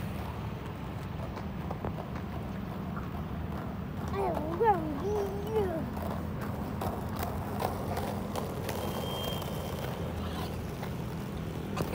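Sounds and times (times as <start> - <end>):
roller skates rolling on asphalt: 0.0 - 11.9
skate clacks: 0.0 - 11.9.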